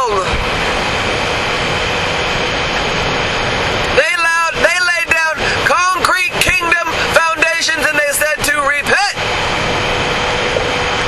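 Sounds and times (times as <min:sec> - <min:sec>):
loud steady rushing noise: 0:00.0 - 0:11.0.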